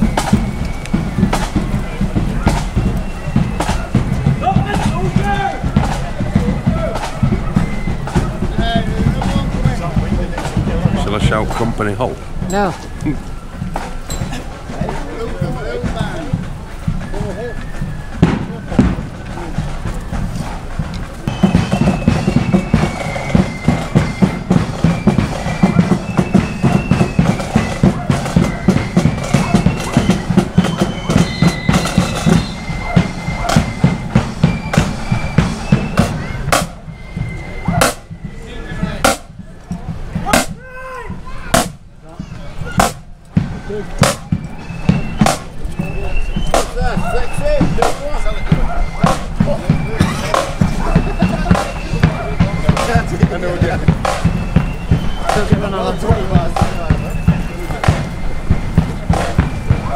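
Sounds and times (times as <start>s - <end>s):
bass drum beats: 0.0s - 59.9s
shrill flute melody: 0.0s - 59.9s.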